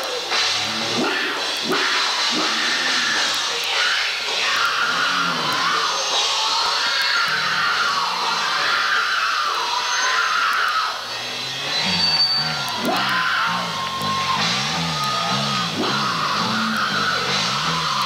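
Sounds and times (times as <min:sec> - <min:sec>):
singer yelling: 0:00.6 - 0:18.0.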